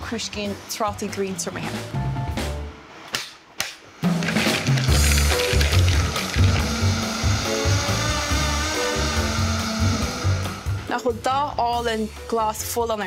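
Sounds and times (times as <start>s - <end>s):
blender running: 4.2s - 10.9s.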